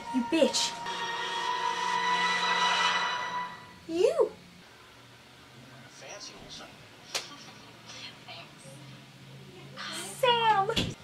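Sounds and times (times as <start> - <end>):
droning soundtrack with hiss: 0.0 - 10.7.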